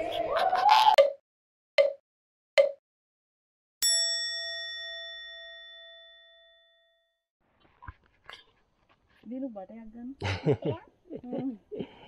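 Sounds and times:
bell-like ding: 3.8 - 7.2.

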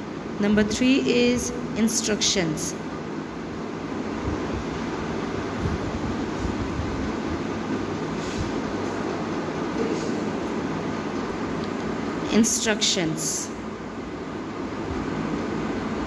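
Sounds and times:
machine hum and rumble: 0.0 - 16.0.

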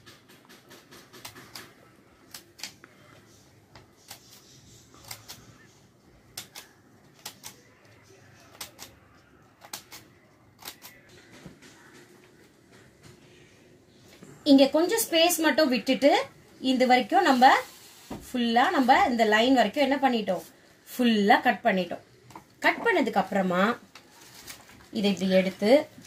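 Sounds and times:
scissors snipping paper: 0.4 - 2.8, 4.0 - 5.6, 6.3 - 9.0, 9.6 - 11.0.

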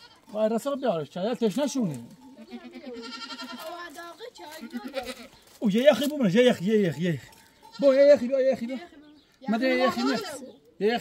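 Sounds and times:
young goats bleating: 0.0 - 0.4, 2.2 - 11.0.

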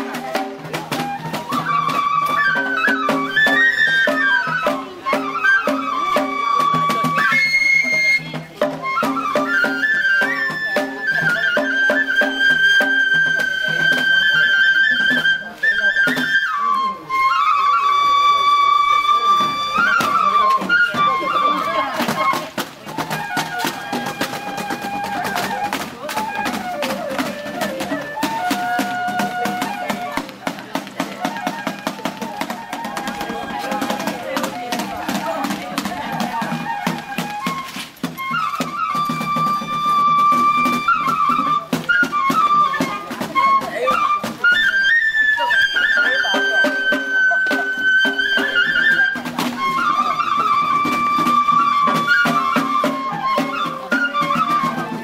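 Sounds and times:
bamboo flute melody: 0.0 - 55.0
fast steady percussion: 0.0 - 55.0.

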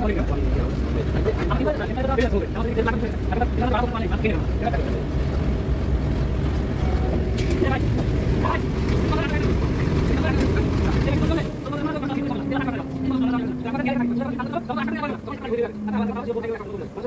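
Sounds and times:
heavy machinery rumble: 0.0 - 17.0
steady machine hum: 6.7 - 17.0.

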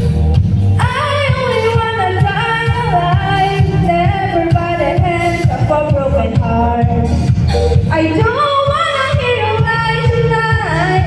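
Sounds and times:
pop backing track: 0.0 - 11.0
girl singing into microphone: 0.8 - 7.1, 7.9 - 11.0.

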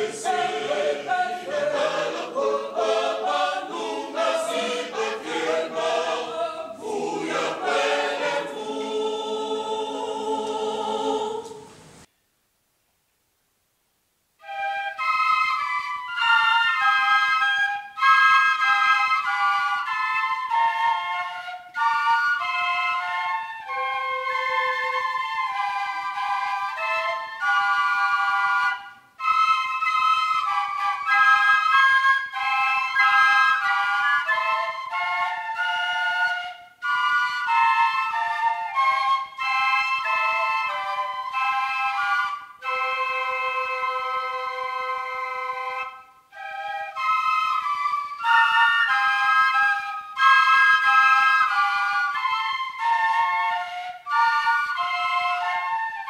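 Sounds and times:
flutes playing melody: 0.0 - 12.1, 14.4 - 56.0.

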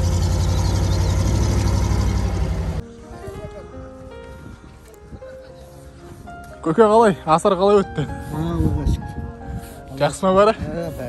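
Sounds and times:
truck engine idling: 0.0 - 2.8.

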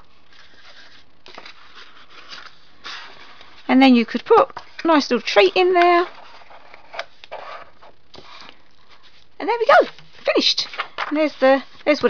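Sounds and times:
papery rustle: 0.1 - 12.0.

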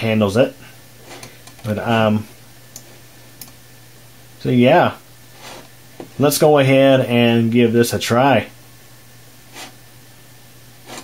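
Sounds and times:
desktop computer humming: 0.0 - 7.6, 8.2 - 11.0.

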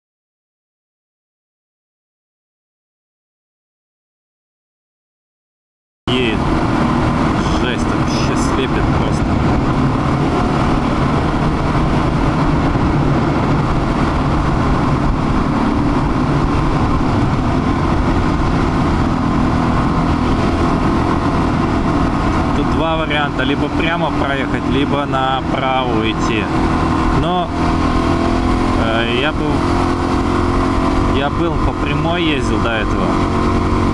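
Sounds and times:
motorcycle engine running: 6.1 - 33.9
wind and tyre noise: 6.1 - 33.9.

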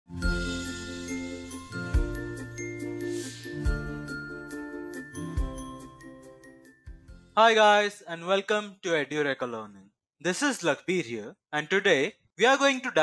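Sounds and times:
bell-like chimes: 0.2 - 7.0.

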